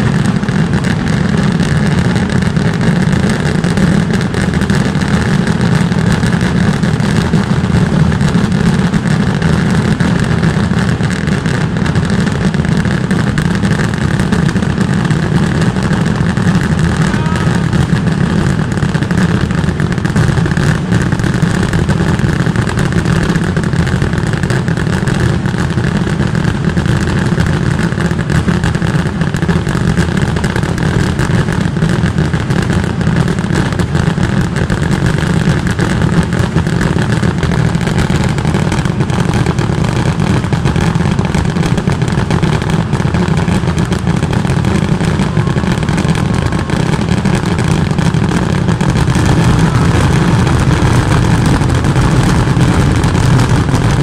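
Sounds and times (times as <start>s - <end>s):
stick rockets bursting: 0.0s - 54.0s.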